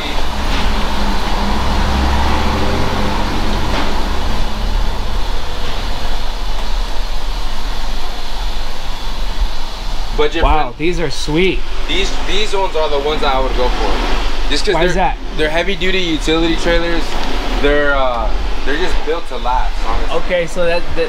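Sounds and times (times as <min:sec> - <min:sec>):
heavy vehicle rumbling past: 0:00.0 - 0:11.0, 0:11.6 - 0:21.0
traffic noise: 0:00.0 - 0:21.0.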